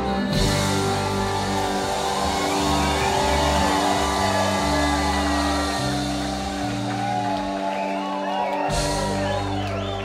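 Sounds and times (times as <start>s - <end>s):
electric bass: 0.0s - 10.0s
ringing electric guitar: 0.0s - 10.0s.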